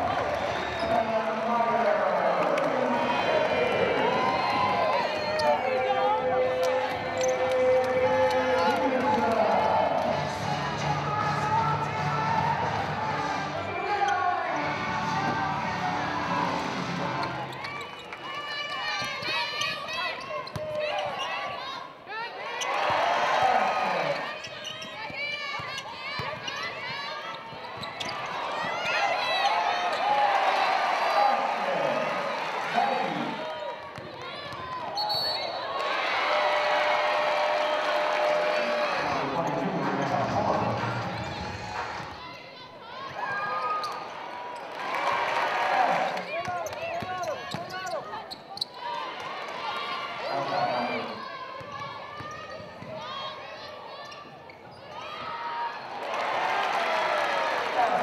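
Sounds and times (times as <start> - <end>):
players and spectators voices: 0.0 - 58.0.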